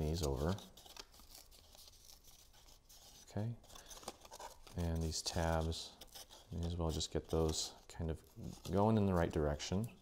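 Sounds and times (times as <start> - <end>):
cardstock rustling: 0.0 - 9.8.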